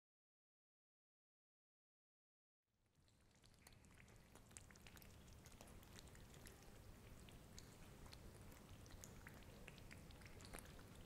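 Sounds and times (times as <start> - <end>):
tiny pops and crackles: 3.0 - 11.0.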